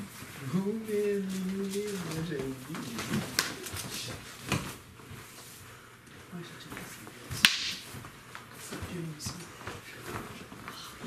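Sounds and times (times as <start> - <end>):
stick strike crack: 7.4 - 7.9.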